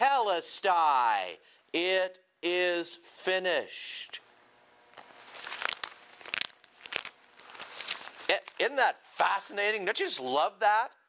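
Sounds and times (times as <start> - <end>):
paper pages rustling: 5.0 - 8.7.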